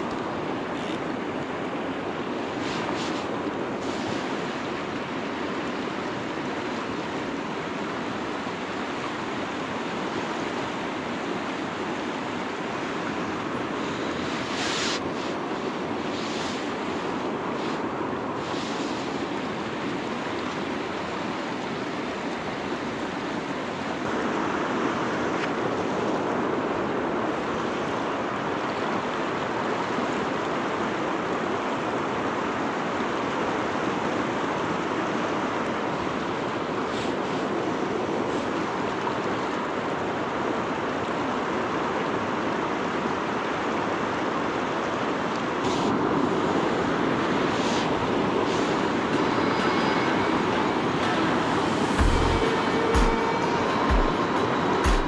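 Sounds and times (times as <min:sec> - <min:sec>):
river rushing over rocks: 0:00.0 - 0:55.0.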